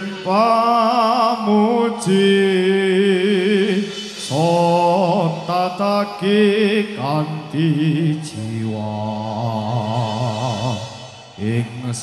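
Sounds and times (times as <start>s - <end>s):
sharp percussion hits: 0.0s - 12.0s.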